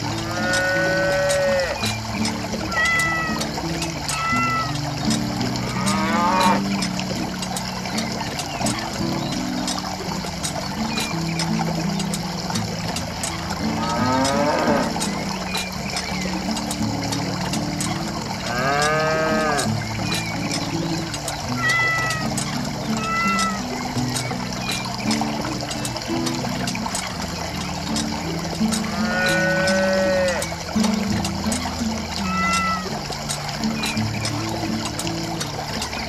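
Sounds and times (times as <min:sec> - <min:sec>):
soft background music: 0:00.0 - 0:36.0
cattle mooing: 0:00.2 - 0:01.8, 0:05.6 - 0:06.6, 0:13.8 - 0:15.0, 0:18.4 - 0:19.7, 0:28.9 - 0:30.5.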